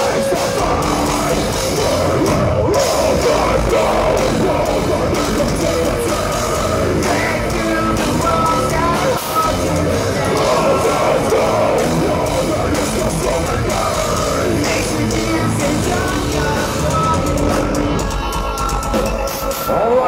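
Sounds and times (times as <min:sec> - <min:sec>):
metal band playing: 0:00.0 - 0:20.0.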